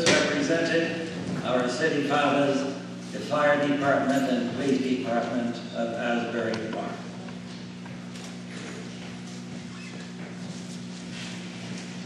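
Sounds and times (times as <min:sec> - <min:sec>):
hall room noise: 0:00.0 - 0:12.0
low electrical hum: 0:00.0 - 0:12.0.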